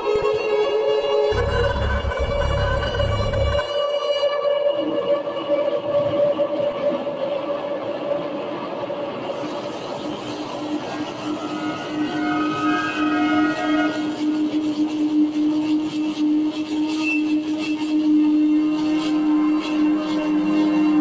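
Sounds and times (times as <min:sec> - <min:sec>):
grainy crackly noise: 0:01.3 - 0:03.6
low steady tone: 0:01.3 - 0:03.6
electronic drone music: 0:01.3 - 0:03.7.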